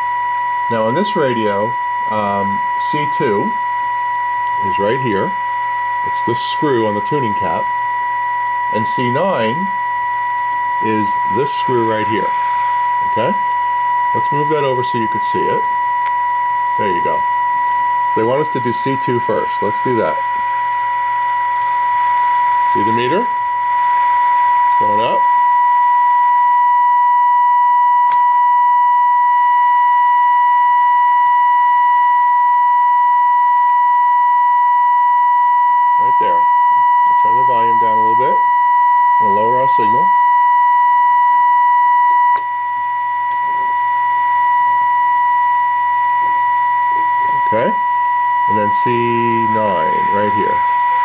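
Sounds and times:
low hum: 0:00.0 - 0:51.0
steady test tone from loudspeaker: 0:00.0 - 0:51.0.

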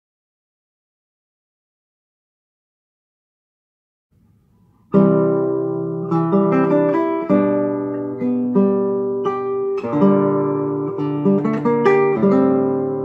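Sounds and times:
classical guitar fingerpicking: 0:04.2 - 0:13.0.

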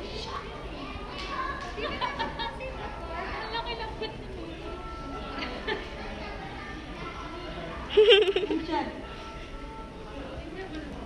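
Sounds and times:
indistinct voices and chatter: 0:00.0 - 0:11.0.

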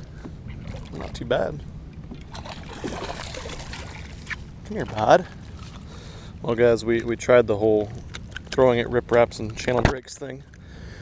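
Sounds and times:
low steady rumble: 0:00.0 - 0:11.0
fish splashing in water: 0:02.2 - 0:04.6.

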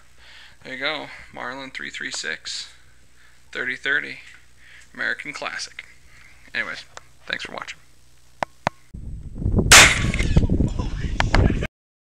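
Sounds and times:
outdoor background noise: 0:00.0 - 0:11.7
loud handgun shot: 0:09.7 - 0:10.4.

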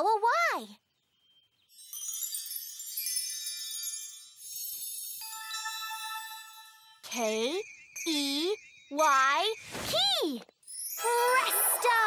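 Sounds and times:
magic wand sparkle twinkle: 0:01.6 - 0:12.0.

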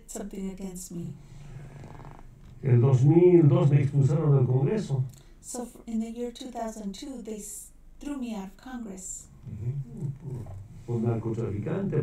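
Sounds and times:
faint low murmur: 0:00.0 - 0:12.0
person speaking: 0:09.4 - 0:12.0.

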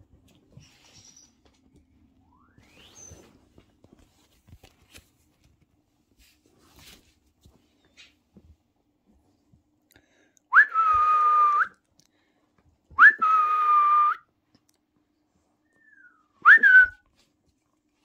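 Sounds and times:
person whistling: 0:10.5 - 0:11.8, 0:13.0 - 0:14.2, 0:15.7 - 0:17.0.

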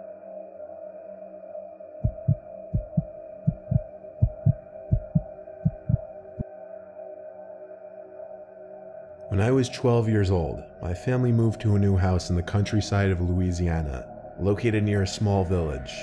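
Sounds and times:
dark ambient music drone: 0:00.0 - 0:16.0
heartbeat thumps: 0:02.0 - 0:06.0.

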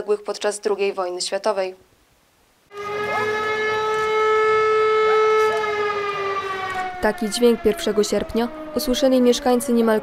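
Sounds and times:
siren wailing: 0:02.7 - 0:10.0.

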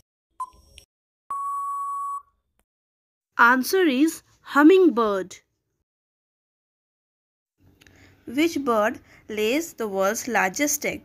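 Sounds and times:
short electronic beep: 0:00.4 - 0:02.4
long steady beep: 0:01.3 - 0:02.4.

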